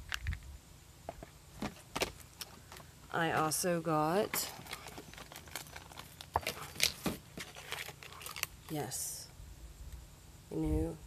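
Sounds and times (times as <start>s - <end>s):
packaged items clicking and knocking: 4.2s - 8.5s.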